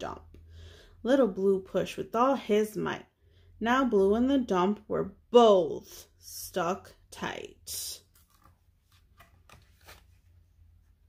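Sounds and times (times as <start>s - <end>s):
book page turning: 8.0s - 11.0s.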